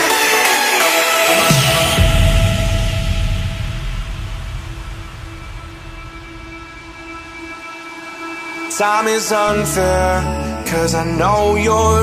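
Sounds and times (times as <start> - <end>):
held synth chords: 0.0 - 11.4
deep bass note: 1.4 - 8.5.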